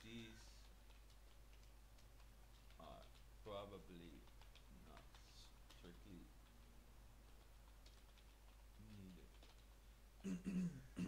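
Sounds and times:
low room hum: 0.0 - 11.0
keyboard typing: 0.5 - 3.3, 4.0 - 9.8.

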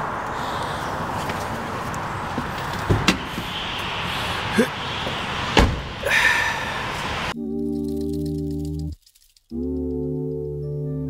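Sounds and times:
car door shutting: 1.1 - 3.9, 5.0 - 6.4.

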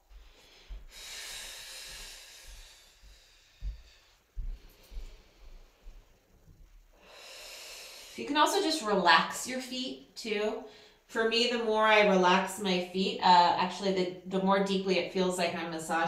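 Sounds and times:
woman breathing: 0.0 - 6.2, 6.9 - 8.8, 10.6 - 11.1
soft low thumps: 2.4 - 6.9.

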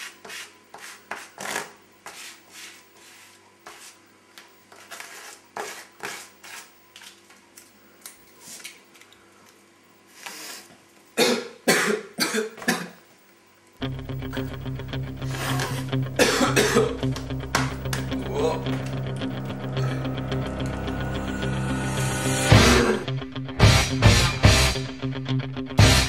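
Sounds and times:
loud short coughs: 11.2 - 13.0, 16.2 - 16.9
music with heavy bass line: 13.8 - 26.0.

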